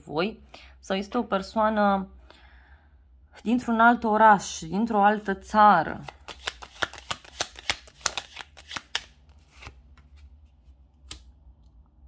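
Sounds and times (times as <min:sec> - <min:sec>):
cards being shuffled: 0:06.0 - 0:11.2.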